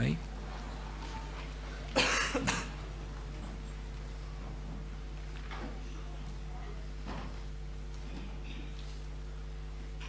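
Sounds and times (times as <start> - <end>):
man coughing: 2.0 - 2.8.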